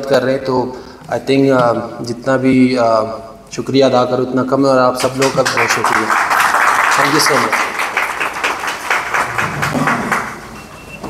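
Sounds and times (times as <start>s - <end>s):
audience clapping: 5.0s - 10.9s.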